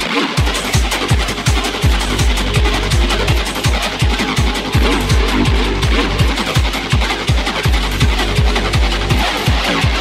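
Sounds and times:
fast hard electronic dance music: 0.0 - 10.0
hi-hats ticking: 0.0 - 10.0
kick drum: 0.0 - 10.0
rolling bass line: 0.0 - 10.0.

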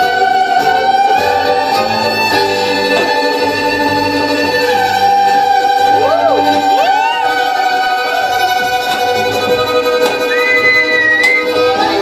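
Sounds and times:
string trio bowed chord: 0.0 - 12.0.

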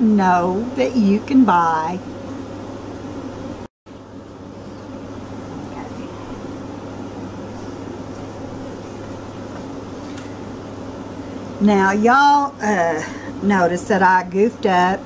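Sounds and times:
fan humming: 0.0 - 15.0.

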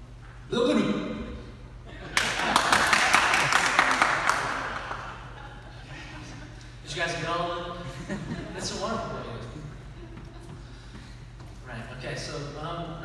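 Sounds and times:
audience applause: 2.2 - 5.4.

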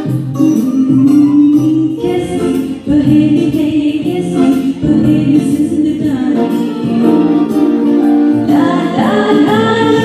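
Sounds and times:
karaoke backing track: 0.0 - 10.0
woman singing into microphone: 0.4 - 7.6, 8.2 - 10.0.

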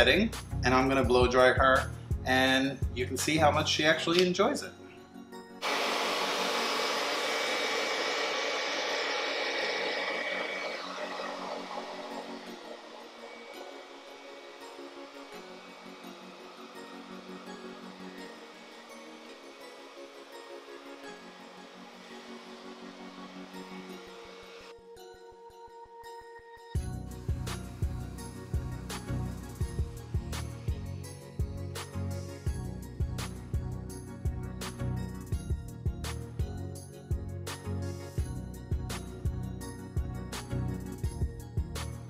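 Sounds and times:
soft background music: 0.0 - 5.6, 11.2 - 42.0
blow dryer blowing: 5.6 - 24.7.

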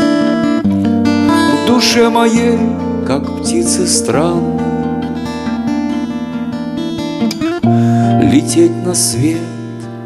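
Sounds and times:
acoustic guitar strumming: 0.0 - 10.0
held keyboard chords: 0.0 - 10.0.

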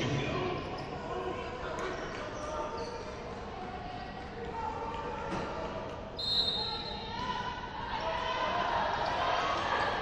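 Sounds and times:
indistinct echoing voices: 0.0 - 6.1.

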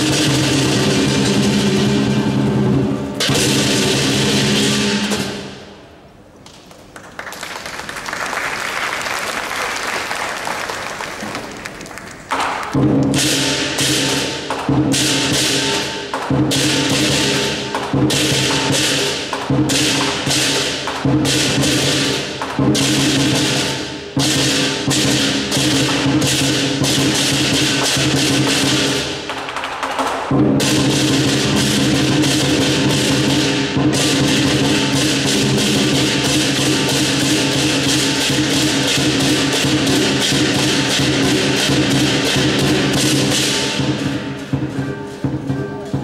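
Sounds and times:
large drum beating: 0.0 - 5.8, 12.3 - 29.4, 30.0 - 46.0
cymbals crashing: 0.0 - 6.2, 12.4 - 29.4, 30.1 - 46.0.

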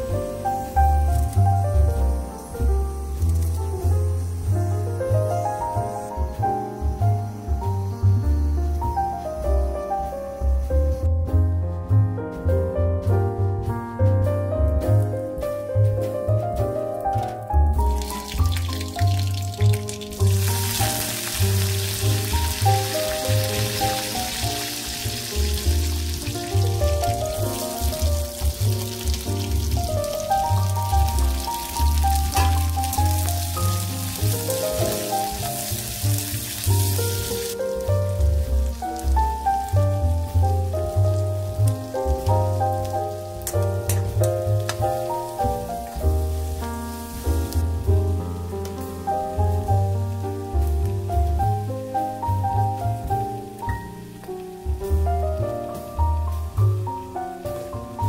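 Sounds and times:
background music with low beat: 0.0 - 58.0
food sizzling in oil: 0.1 - 8.9, 17.8 - 50.7.

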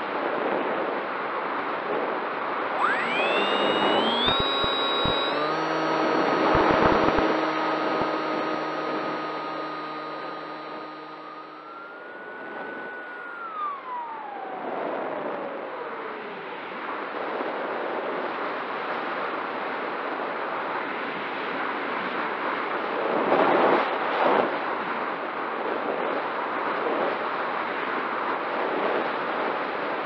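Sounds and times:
electric motor and propeller whine: 2.6 - 18.3.

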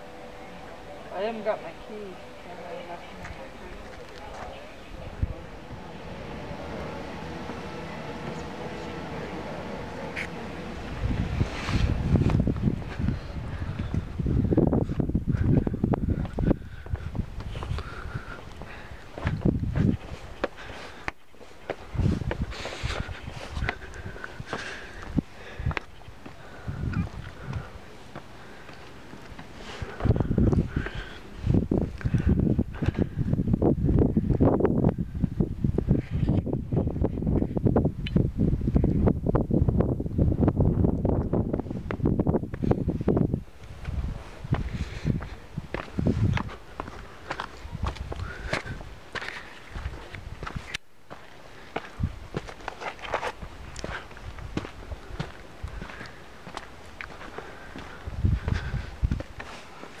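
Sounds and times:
low rumble on microphone: 2.8 - 21.0, 21.8 - 28.6, 29.2 - 49.1, 57.1 - 59.4
footsteps on rock: 14.8 - 31.2, 43.6 - 60.0.

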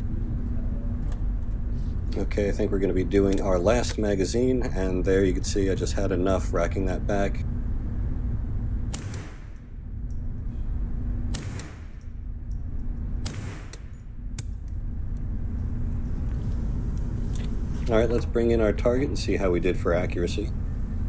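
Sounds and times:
steady low rumble: 0.0 - 21.0
rifle shots ringing indoors: 8.9 - 9.8, 11.2 - 15.1.

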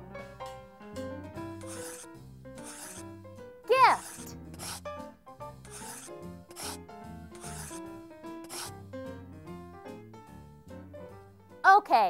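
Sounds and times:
light background music: 0.0 - 12.0
pen scratching on paper: 1.6 - 3.1, 3.7 - 4.9, 5.6 - 8.8.

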